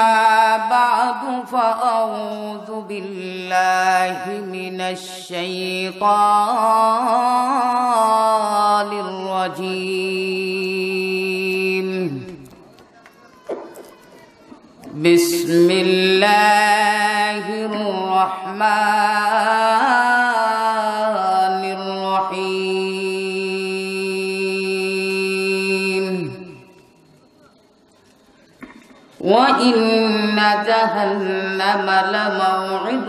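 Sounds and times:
man chanting into a microphone: 0:00.0 - 0:12.5, 0:14.9 - 0:26.6, 0:29.2 - 0:33.0.

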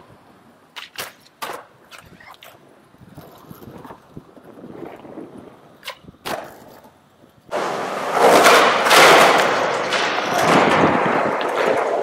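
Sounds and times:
skateboard wheels rumbling: 0:00.0 - 0:12.0.

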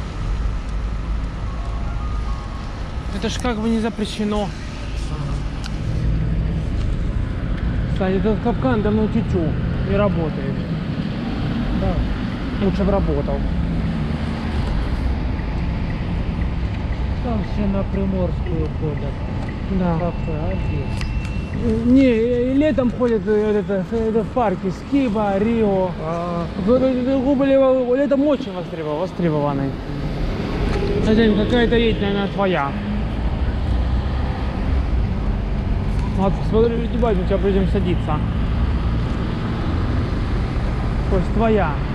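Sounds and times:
traffic on a wet road: 0:00.0 - 0:41.9.

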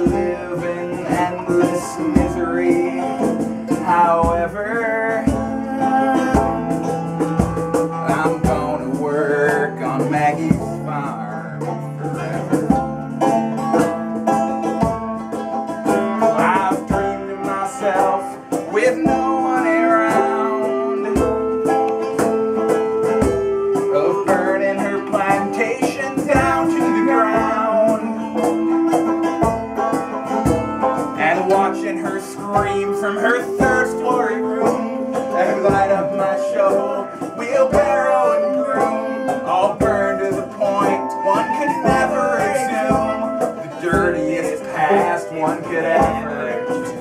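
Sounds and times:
banjo picking: 0:00.0 - 0:47.0
hand drum: 0:00.0 - 0:47.0
mandolin picking: 0:00.0 - 0:47.0
clarinet playing long notes: 0:17.1 - 0:47.0.

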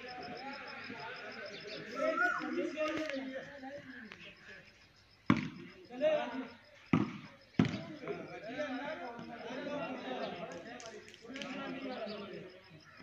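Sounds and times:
players shouting: 0:00.0 - 0:03.9
volleyball hand slaps: 0:05.3 - 0:05.6.

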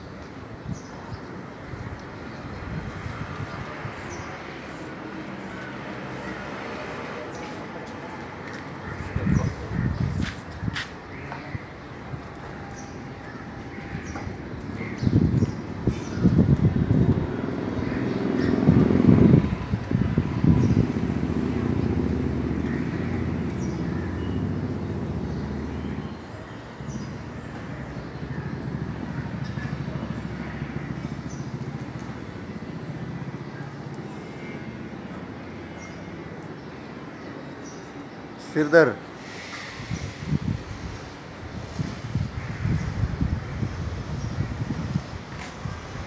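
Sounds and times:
low urban rumble: 0:00.0 - 0:46.0.

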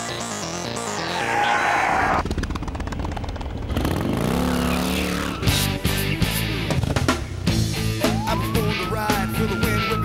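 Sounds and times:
motorcycle engine revving: 0:02.2 - 0:07.7
intro music: 0:04.3 - 0:10.0.

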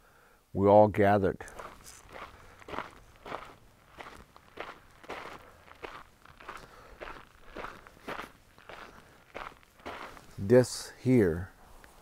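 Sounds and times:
footsteps on gritty dirt: 0:01.4 - 0:10.8.

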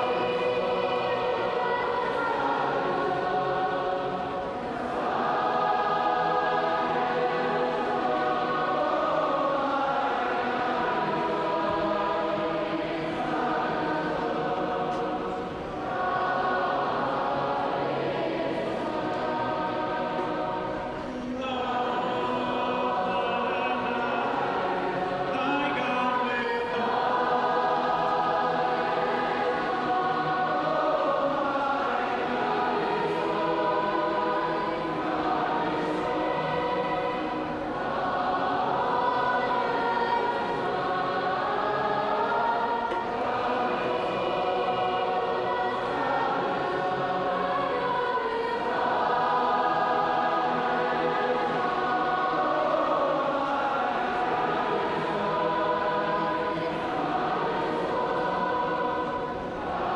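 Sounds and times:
group of young voices singing: 0:00.0 - 0:59.9.

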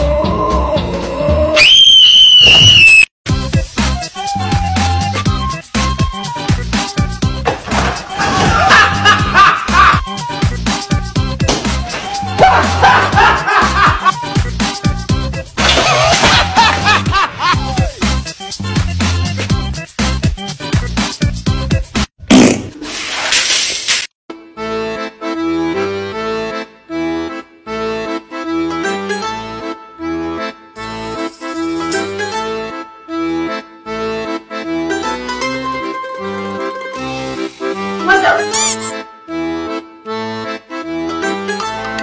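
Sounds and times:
shrill high-pitched tone: 0:01.6 - 0:03.1, 0:38.1 - 0:39.0
music with a beat: 0:03.3 - 0:07.5, 0:09.0 - 0:15.6, 0:16.9 - 0:22.1
loud wet splash: 0:15.6 - 0:16.8.

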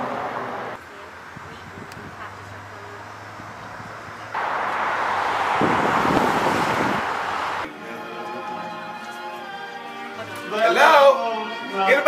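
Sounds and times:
steady traffic background: 0:00.0 - 0:10.1
vehicle rushing by: 0:02.1 - 0:07.7.

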